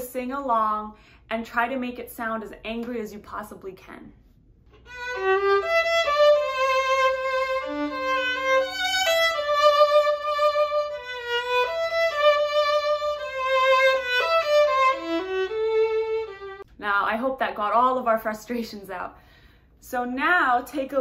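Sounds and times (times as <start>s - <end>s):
solo violin melody: 4.8s - 16.7s.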